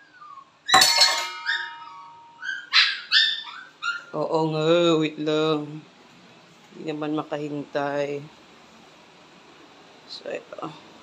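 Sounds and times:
dog whining and yipping: 0.0 - 0.8, 1.4 - 4.2
sharp ringing clink: 0.7 - 2.4.

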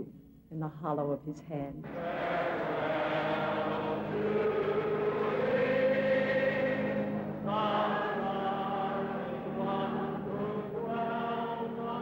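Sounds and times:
crowd singing: 1.8 - 12.0.

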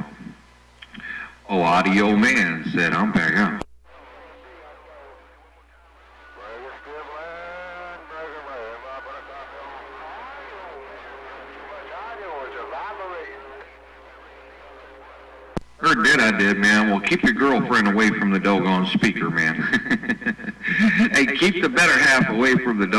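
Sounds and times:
steady low hum: 0.0 - 22.9
muffled voice over radio speaker: 0.9 - 22.9.

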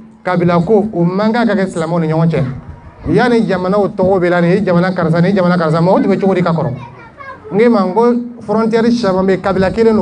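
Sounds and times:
man speaking into a microphone: 0.0 - 6.9, 7.5 - 10.0.

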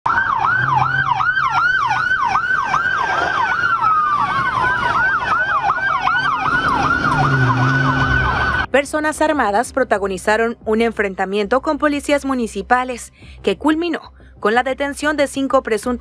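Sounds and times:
siren wail: 0.0 - 8.7
siren yelp: 0.0 - 8.7.

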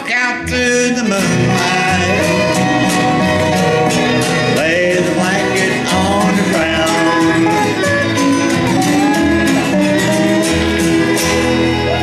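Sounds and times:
man singing: 0.0 - 10.4
guitar: 0.0 - 12.0
upright bass: 0.0 - 12.0
fiddle: 0.1 - 12.0.

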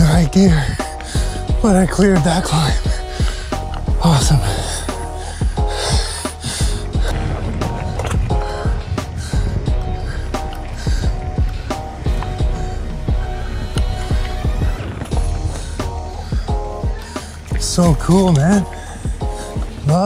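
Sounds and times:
background music with held notes: 0.0 - 20.0.

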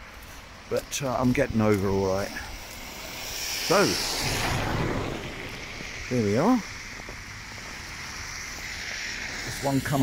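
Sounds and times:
car tyres hissing on wet road: 0.0 - 10.0.

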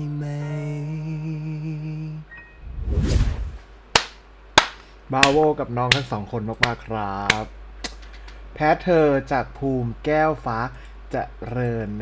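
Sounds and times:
rush of noise: 2.6 - 3.6
hand claps: 4.0 - 8.0.

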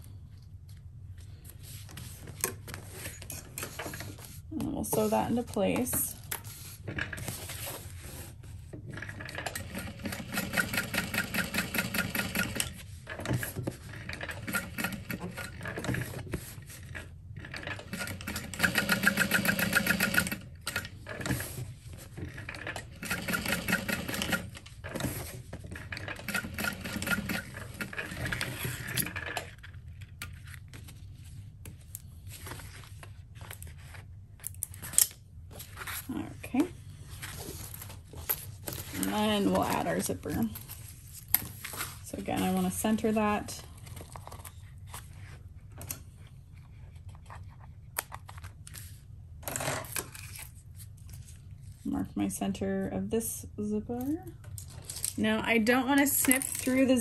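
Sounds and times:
sewing machine stitching: 9.0 - 12.8, 17.5 - 21.4, 22.6 - 25.2, 25.9 - 29.2.

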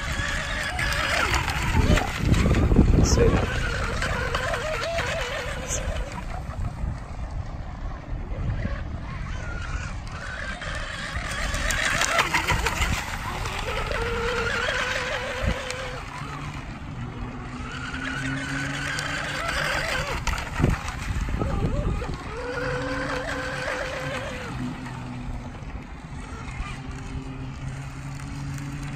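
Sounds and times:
rushing water noise: 0.0 - 7.8, 9.0 - 28.9
rc boat motor whine: 0.0 - 28.9.

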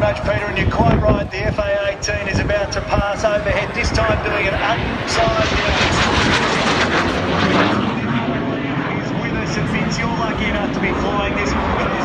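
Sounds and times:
fighter jet flying overhead: 0.0 - 12.0.

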